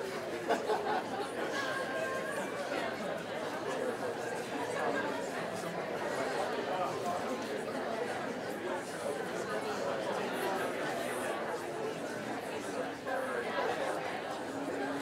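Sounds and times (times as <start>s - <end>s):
murmur of overlapping voices: 0.0s - 15.0s.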